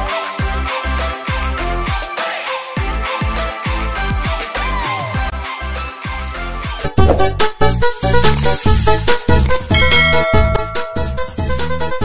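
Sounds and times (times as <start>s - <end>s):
deep bass drum hits: 6.8s - 7.6s.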